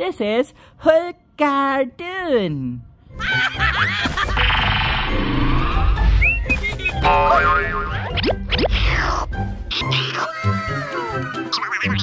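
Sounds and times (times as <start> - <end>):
cartoon background music: 3.1 - 12.0.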